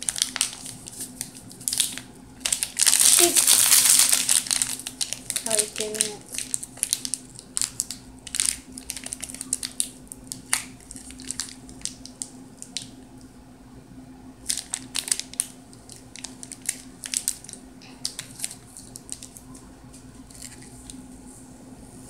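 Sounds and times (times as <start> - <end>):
plastic tube crinkling: 0.0 - 12.9, 14.4 - 21.0
faint steady hum: 0.0 - 22.0.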